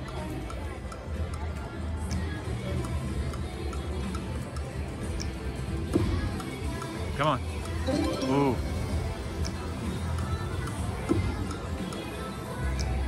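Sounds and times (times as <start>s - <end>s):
faint reel ticks: 0.0s - 5.4s
slot machine music: 7.8s - 9.2s
low casino din: 7.8s - 9.3s.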